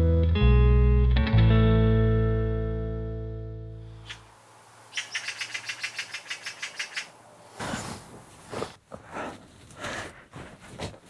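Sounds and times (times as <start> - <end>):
bird calling in rapid high notes: 4.9 - 7.2.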